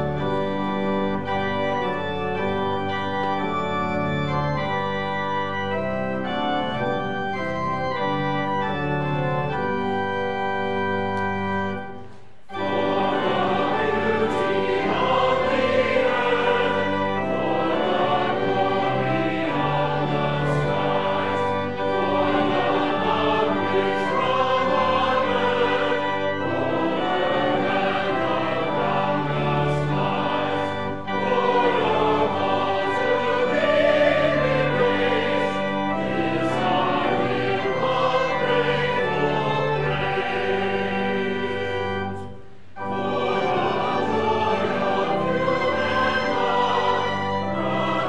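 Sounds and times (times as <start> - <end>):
choir singing a hymn: 0.0 - 48.0
organ: 0.0 - 48.0
violin: 0.0 - 48.0.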